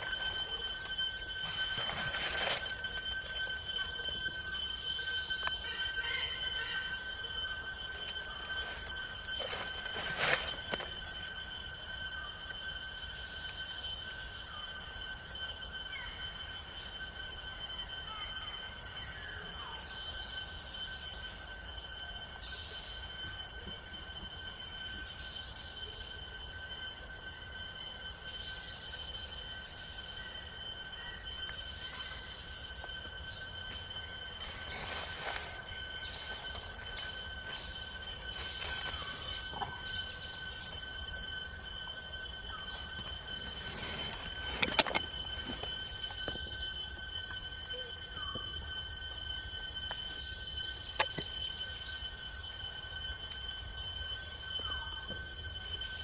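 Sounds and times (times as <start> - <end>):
insects droning: 0.0 - 56.0.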